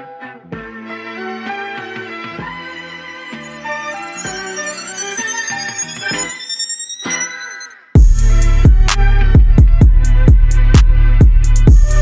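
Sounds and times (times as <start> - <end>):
soulful sampled melody: 2.0 - 8.6
thin high rising tone: 2.7 - 8.0.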